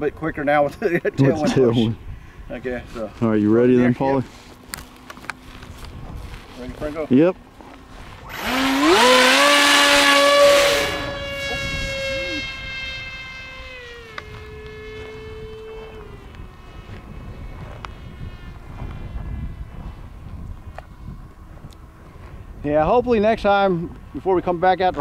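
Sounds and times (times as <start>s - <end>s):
electric motor propeller whine: 3.6s - 22.6s.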